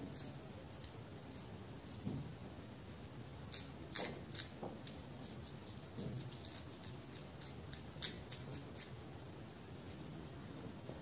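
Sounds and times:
fingernails scratching through hair: 0:03.5 - 0:09.0.

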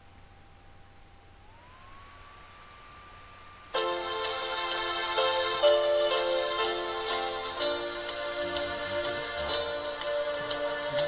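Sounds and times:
background hiss: 0:00.0 - 0:11.0
faint thin steady tone: 0:00.0 - 0:11.0.

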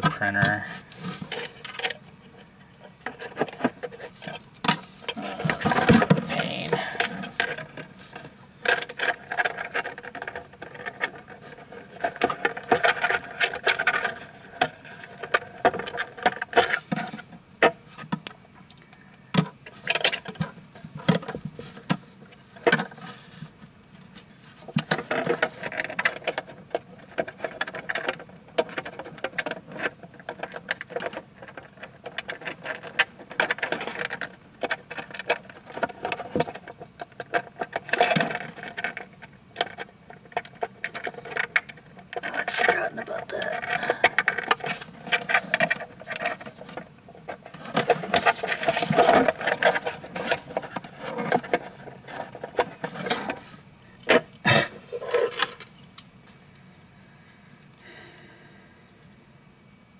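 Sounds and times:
hands handling plastic parts: 0:00.0 - 0:18.4, 0:19.3 - 0:58.3.

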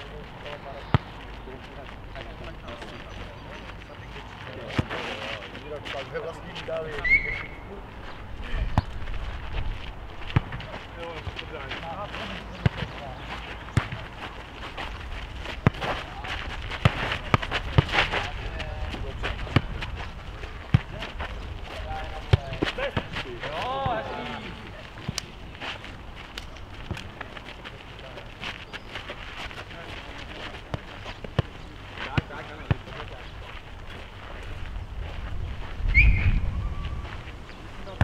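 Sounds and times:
players calling out: 0:21.9 - 0:25.4.

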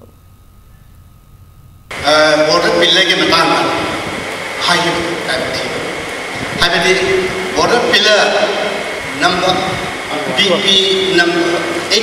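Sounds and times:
low steady hum: 0:00.0 - 0:12.0
loud amplified voice: 0:01.9 - 0:12.0.

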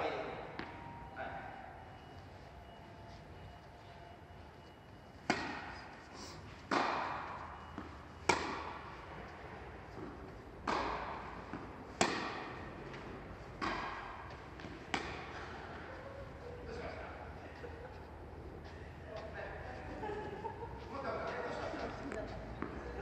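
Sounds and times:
tennis ball hit with rackets: 0:05.2 - 0:06.0, 0:06.6 - 0:15.8.

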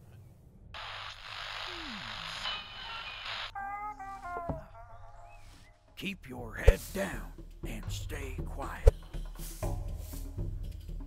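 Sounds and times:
radio static hiss: 0:00.8 - 0:03.5
thin tune from radio: 0:00.8 - 0:03.5.

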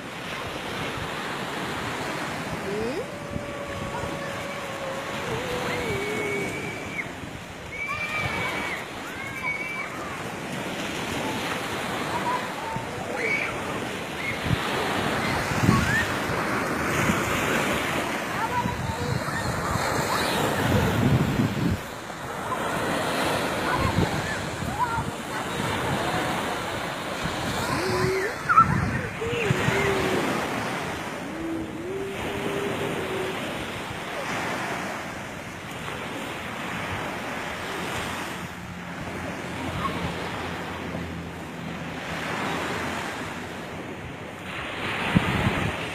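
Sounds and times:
surf breaking on a beach: 0:00.0 - 0:45.9
wind buffeting the microphone: 0:00.8 - 0:37.3, 0:43.4 - 0:45.9.

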